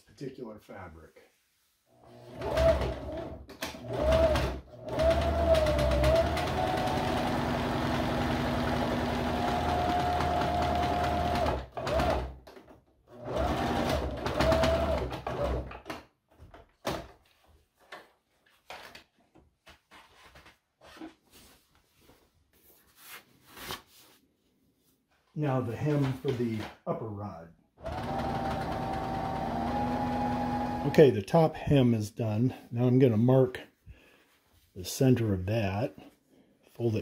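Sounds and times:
sewing machine stitching: 2.0s - 15.9s, 27.8s - 31.1s.

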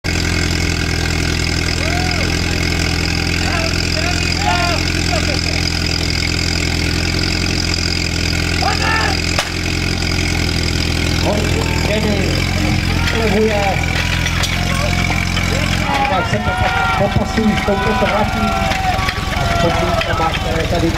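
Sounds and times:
pump engine idling: 0.0s - 20.9s.

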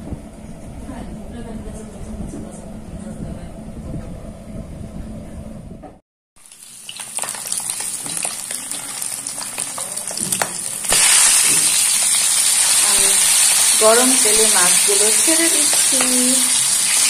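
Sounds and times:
low steady hum: 0.0s - 6.0s
fish frying in hot oil: 6.4s - 17.0s.

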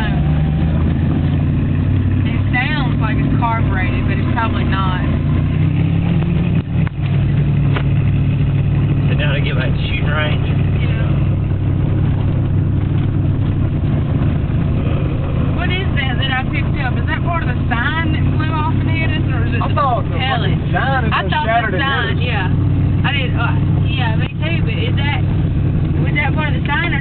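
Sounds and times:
truck engine idling: 0.0s - 27.0s.

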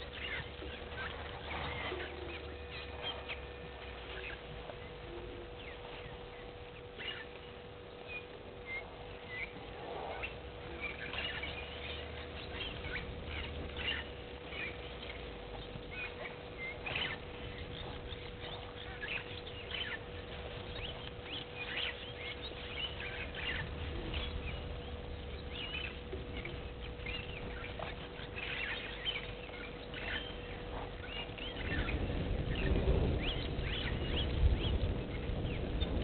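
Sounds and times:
faint steady hum: 0.0s - 36.0s
small birds chirping: 0.0s - 36.0s.

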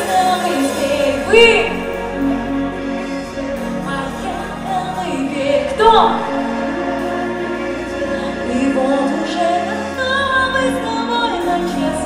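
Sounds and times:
woman singing: 0.0s - 2.8s, 3.6s - 12.0s
sustained chords: 0.7s - 12.0s.

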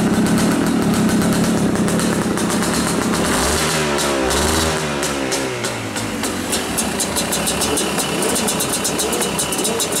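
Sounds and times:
two-stroke engine idling: 0.0s - 10.0s
fast uneven high ticking: 6.0s - 10.0s.

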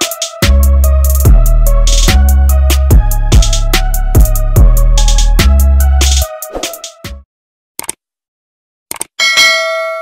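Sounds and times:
bright bell ding: 9.2s - 10.0s.

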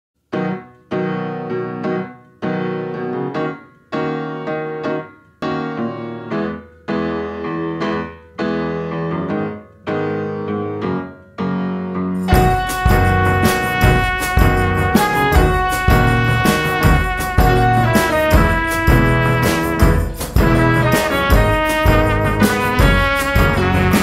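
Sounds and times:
piano playing slow chords: 0.3s - 24.0s.

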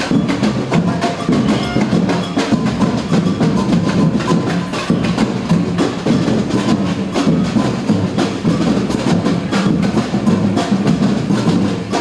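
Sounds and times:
samba percussion band: 0.0s - 12.0s.

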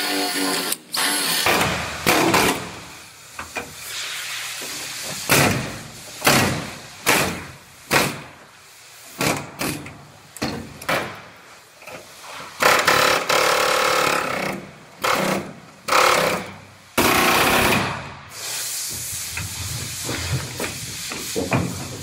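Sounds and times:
pneumatic air tool bursts: 0.0s - 10.0s, 12.2s - 22.0s.

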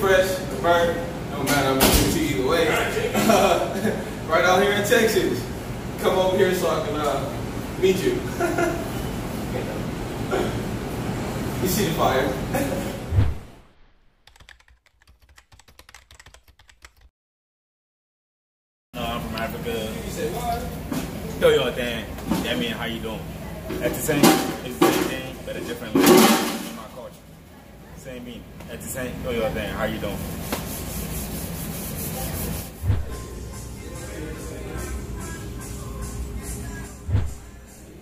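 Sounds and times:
low thump: 13.1s - 13.6s, 37.1s - 37.5s
keyboard typing clicks: 14.3s - 17.1s.

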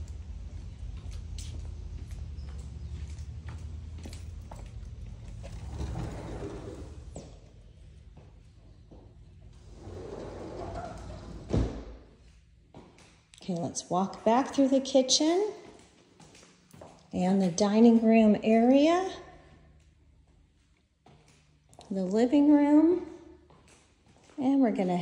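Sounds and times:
footsteps: 0.0s - 10.1s
sliding glass door: 5.4s - 7.2s, 9.6s - 11.8s.

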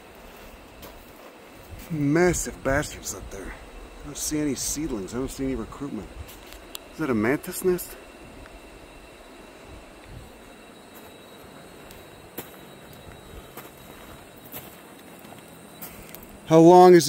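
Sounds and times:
outdoor background noise: 0.0s - 17.0s.

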